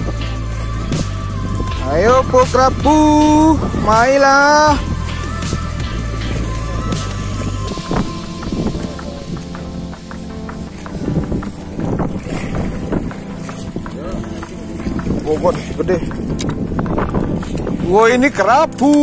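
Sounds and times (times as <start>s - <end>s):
background music with beat: 0.0s - 19.0s
small boat noise: 0.0s - 19.0s
wind on microphone: 0.0s - 19.0s.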